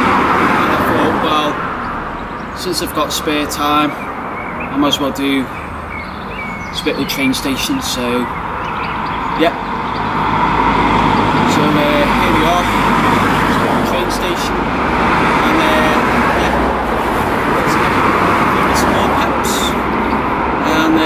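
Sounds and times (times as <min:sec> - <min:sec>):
cars driving past: 0:00.0 - 0:21.0.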